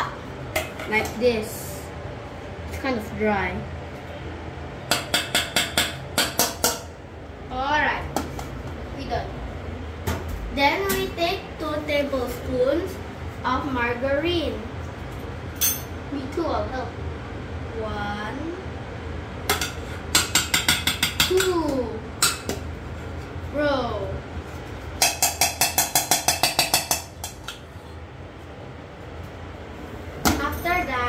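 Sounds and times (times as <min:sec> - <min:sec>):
metal spoon tapping steel pot: 0:25.0 - 0:27.6.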